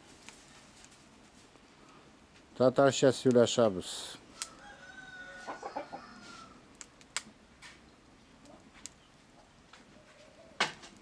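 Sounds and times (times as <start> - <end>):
wood fire crackles: 0.0 - 11.0
rooster crowing faintly: 4.3 - 6.7.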